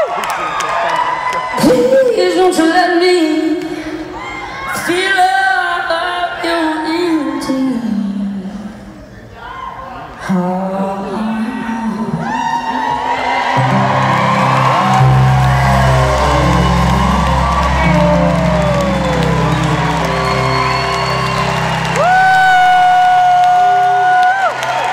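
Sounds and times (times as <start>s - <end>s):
crowd cheering and whooping: 0.0s - 2.0s, 12.2s - 24.9s
live rock band sustained chords: 13.6s - 23.2s
steady high note ringing: 13.8s - 22.9s.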